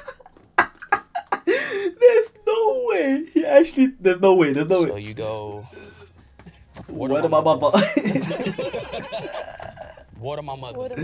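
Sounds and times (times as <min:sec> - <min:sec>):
men laughing and snickering: 0:00.0 - 0:01.9, 0:07.7 - 0:10.2.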